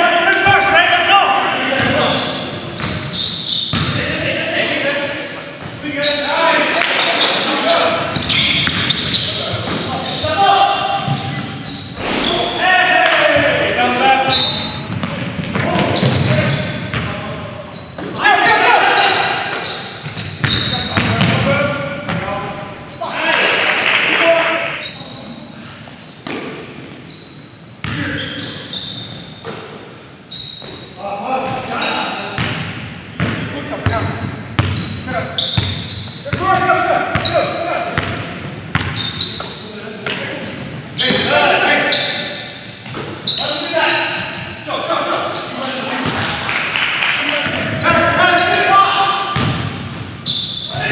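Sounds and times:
players' voices: 0:00.0 - 0:26.6, 0:30.8 - 0:50.9
basketball bouncing on hardwood: 0:49.4 - 0:49.7.

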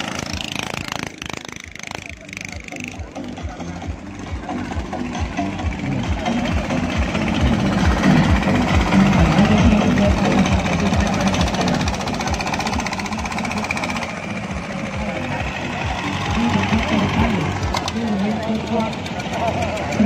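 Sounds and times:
boat engine running loudly: 0:00.0 - 0:20.0.

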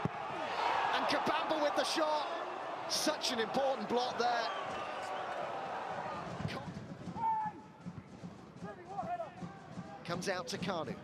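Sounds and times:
players shouting: 0:00.0 - 0:06.5.

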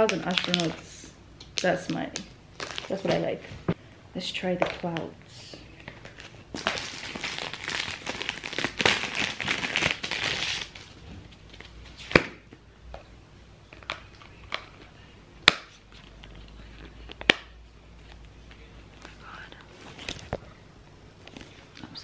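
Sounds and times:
plastic packaging crinkling: 0:00.0 - 0:03.5, 0:05.7 - 0:12.2.

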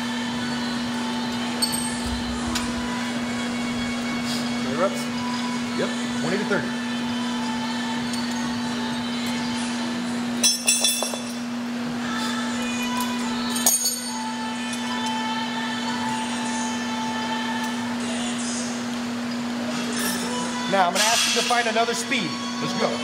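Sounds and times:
steady low hum: 0:00.0 - 0:10.6.

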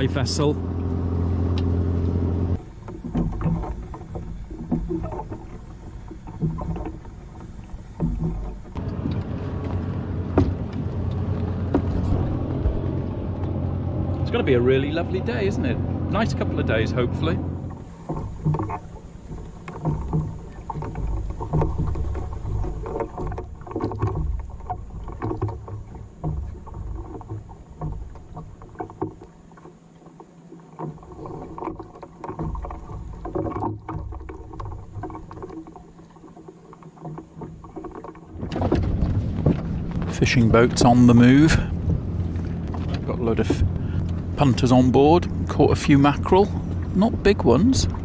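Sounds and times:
water lapping against hull: 0:00.0 - 0:48.0.

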